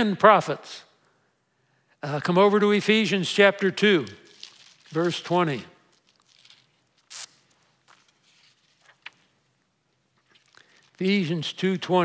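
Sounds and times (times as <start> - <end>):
paper pages turning: 4.2 - 5.3, 5.9 - 9.4, 10.1 - 11.1.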